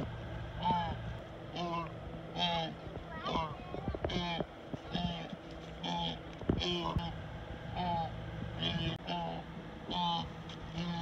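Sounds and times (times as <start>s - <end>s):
people talking: 2.4s - 5.4s.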